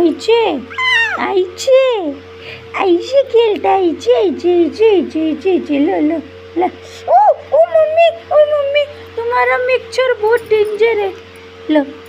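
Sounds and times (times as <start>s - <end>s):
baby wailing: 0.7s - 1.3s.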